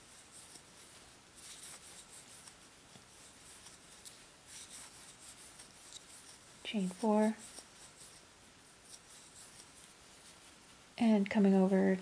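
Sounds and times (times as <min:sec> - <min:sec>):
yarn rustling over crochet hook: 0:00.0 - 0:12.0.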